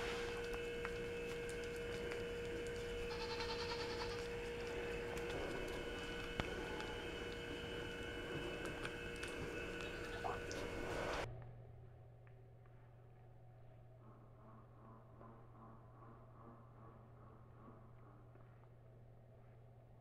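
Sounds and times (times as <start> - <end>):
electrical hum: 0.0 - 20.0
goat licking wet tongue clicks: 8.5 - 10.7.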